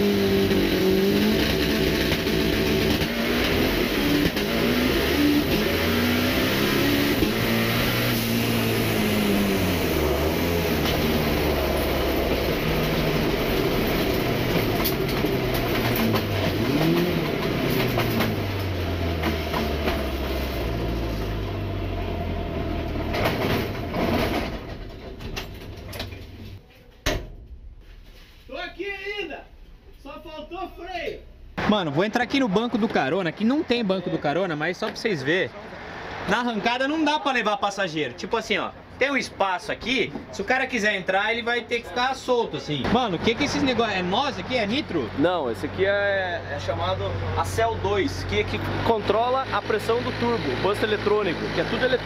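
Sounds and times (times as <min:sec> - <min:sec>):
drag car engine running hard: 0:00.0 - 0:25.6, 0:43.2 - 0:52.0.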